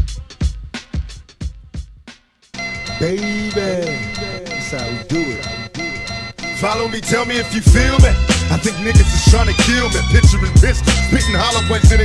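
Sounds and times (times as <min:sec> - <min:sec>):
rapping over a beat: 0:00.0 - 0:01.8, 0:02.9 - 0:05.9, 0:06.5 - 0:12.0
heavy bass: 0:02.8 - 0:12.0
drum hits: 0:07.7 - 0:08.4, 0:09.0 - 0:09.6.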